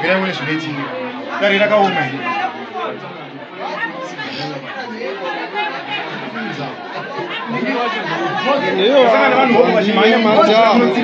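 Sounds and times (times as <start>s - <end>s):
babble of overlapping voices: 0.0s - 11.0s.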